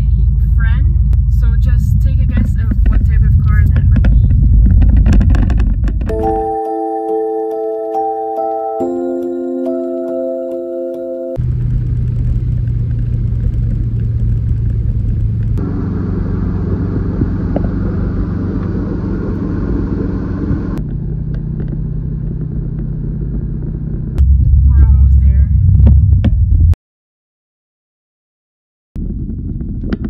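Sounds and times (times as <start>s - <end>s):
car engine and road noise: 0.0s - 26.8s, 29.0s - 30.0s.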